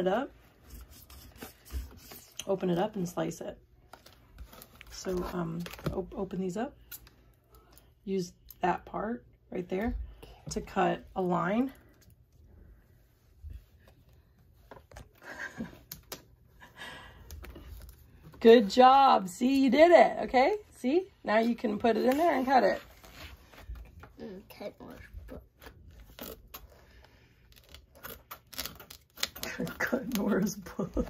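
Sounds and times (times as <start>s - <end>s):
scissors cutting plastic wrap: 27.6s - 31.0s.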